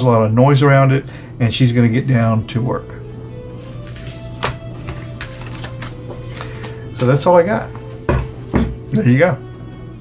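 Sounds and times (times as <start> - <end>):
soft background music: 0.0 - 10.0
cards tapping and sliding on table: 3.8 - 7.1.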